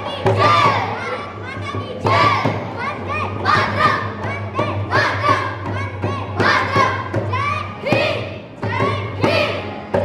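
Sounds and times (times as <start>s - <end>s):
children chanting: 0.0s - 10.0s
drum strokes thudding: 3.4s - 10.0s.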